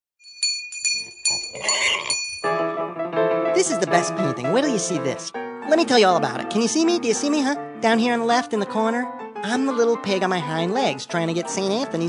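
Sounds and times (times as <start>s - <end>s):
small bell ringing: 0.2s - 2.6s
pig squeal: 1.3s - 2.2s.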